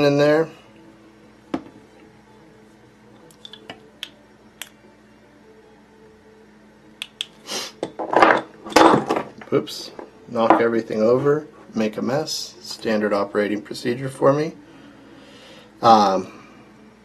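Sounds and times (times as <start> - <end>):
clatter of tools knocked over: 7.9 - 9.4.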